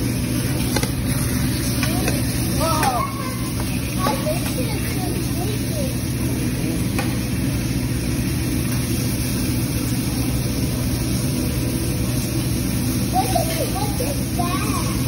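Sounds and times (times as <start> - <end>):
food sizzling on griddle: 0.0 - 15.0.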